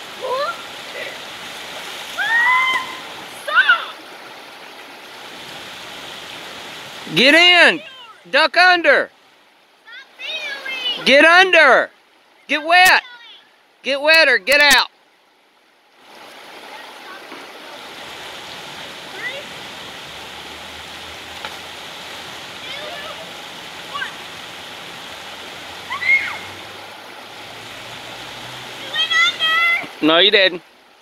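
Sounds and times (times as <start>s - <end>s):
water rushing over rapids: 0.0s - 31.0s
voices calling: 7.0s - 9.1s, 9.8s - 14.9s, 25.2s - 30.7s.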